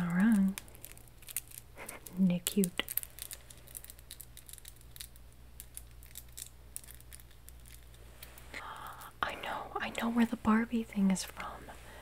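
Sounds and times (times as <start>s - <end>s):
plastic beads clicking: 0.0s - 9.1s.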